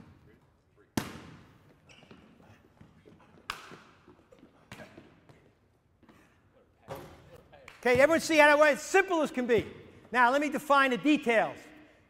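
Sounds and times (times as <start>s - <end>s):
basketball hitting gym floor: 0.0s - 8.5s.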